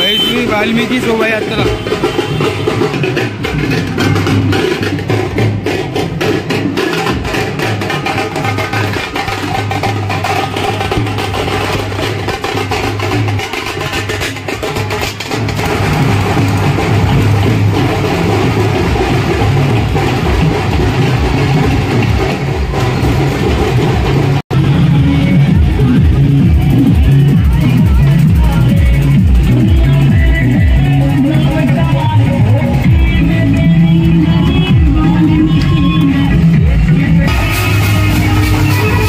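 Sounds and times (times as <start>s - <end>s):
heavy steady bass: 0.0s - 6.6s, 15.4s - 39.0s
band drums fast beat: 0.0s - 39.0s.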